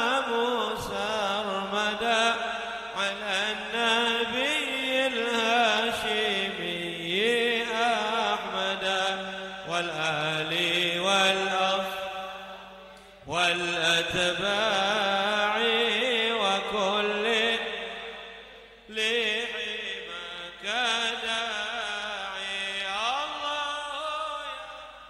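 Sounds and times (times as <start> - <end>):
man chanting into a microphone: 0.0 - 25.0.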